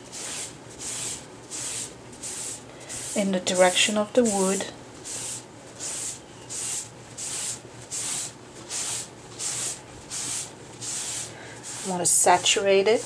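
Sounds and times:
rag wiping wood: 0.0s - 4.4s, 5.0s - 13.0s.

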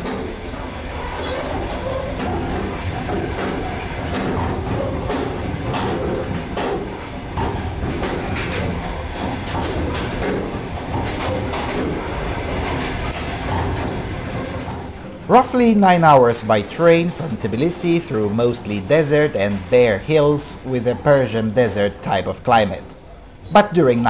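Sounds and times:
train rumbling with clicks: 0.0s - 24.0s.

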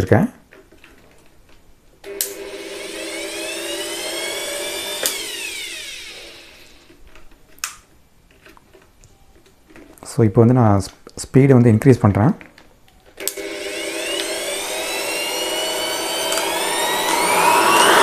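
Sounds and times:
air blower motor whine: 2.1s - 6.9s, 13.2s - 18.0s.

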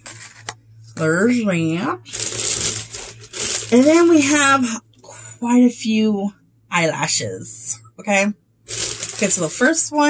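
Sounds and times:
plastic bag rustling: 2.1s - 4.5s, 8.7s - 9.8s.

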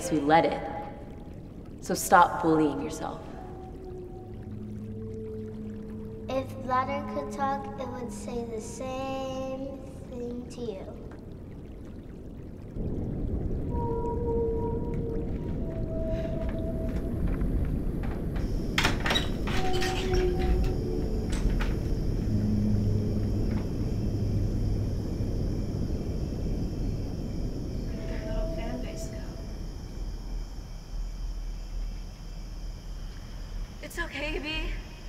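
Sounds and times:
long held tones: 0.0s - 8.7s, 12.8s - 35.0s
low rumbling drone: 0.0s - 35.0s.

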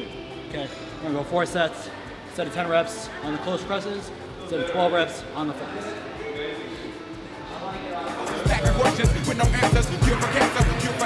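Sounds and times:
man's voice: 7.8s - 11.0s.

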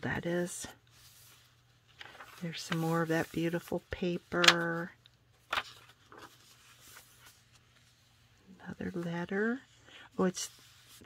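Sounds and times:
paper rustling: 0.8s - 9.5s, 10.2s - 11.0s.

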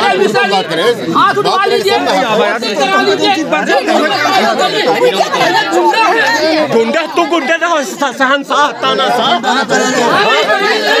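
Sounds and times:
people arguing loudly: 0.0s - 11.0s.

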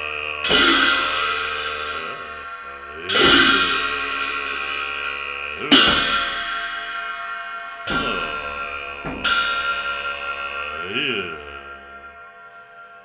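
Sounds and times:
hand cymbals clashing: 0.0s - 13.0s.

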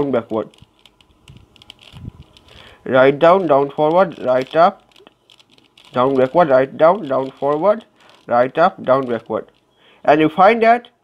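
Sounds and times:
plastic puzzle cube clicking: 0.2s - 9.7s.

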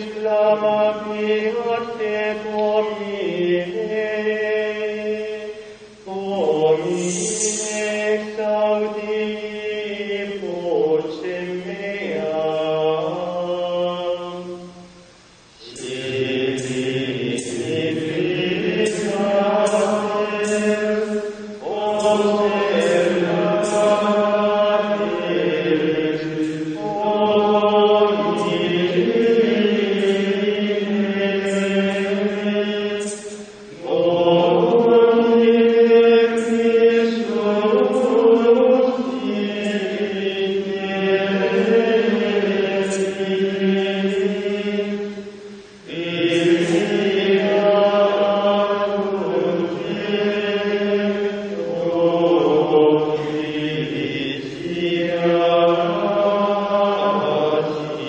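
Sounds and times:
choir chanting in unison: 0.0s - 15.0s, 15.6s - 58.0s.

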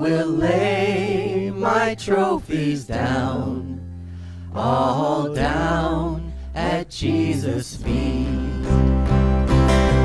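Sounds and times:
congregation singing a hymn: 0.0s - 3.9s, 4.5s - 8.9s.

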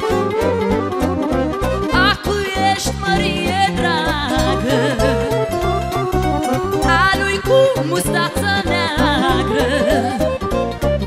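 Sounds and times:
accordion: 0.0s - 11.0s
woman singing: 1.9s - 6.1s, 6.8s - 10.4s.

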